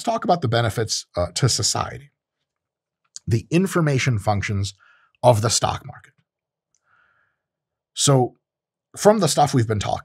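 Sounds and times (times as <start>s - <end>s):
man speaking: 0.0s - 2.1s, 3.2s - 6.1s, 8.0s - 8.3s, 9.0s - 10.0s
faint breath: 4.8s - 5.2s, 6.8s - 7.5s.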